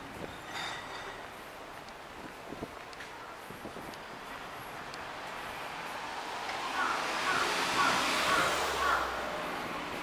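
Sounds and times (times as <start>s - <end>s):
vehicle passing by: 5.4s - 10.0s.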